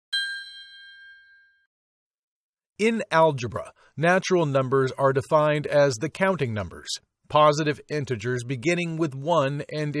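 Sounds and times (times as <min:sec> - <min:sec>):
bell-like chime ding: 0:00.1 - 0:01.7.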